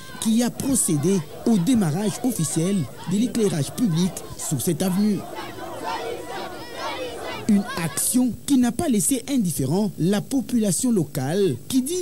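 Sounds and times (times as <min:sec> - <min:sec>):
crowd cheering and shouting: 0:00.0 - 0:08.2.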